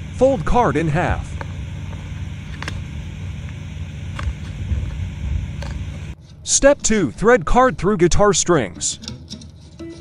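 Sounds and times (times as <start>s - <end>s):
low background rumble: 0.0s - 6.2s.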